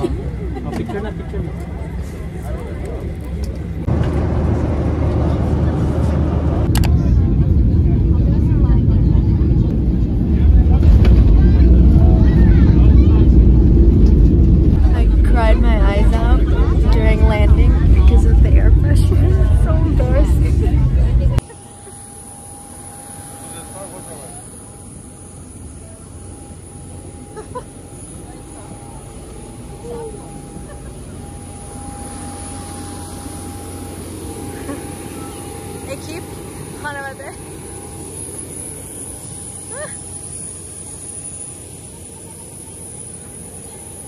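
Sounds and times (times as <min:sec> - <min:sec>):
airliner cabin low rumble: 0:00.0 - 0:44.0
steady whine: 0:00.0 - 0:44.0.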